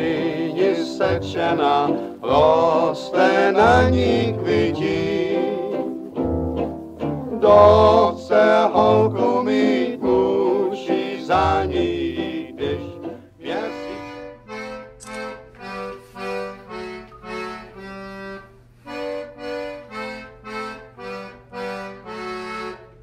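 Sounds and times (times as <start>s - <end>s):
recorded music with singing: 0.0s - 6.1s, 7.2s - 14.3s
squeezebox playing chords: 0.0s - 23.0s.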